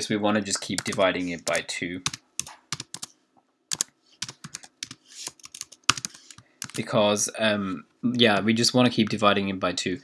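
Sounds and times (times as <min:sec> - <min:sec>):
typing on computer keyboard: 0:00.7 - 0:03.1, 0:03.7 - 0:06.8.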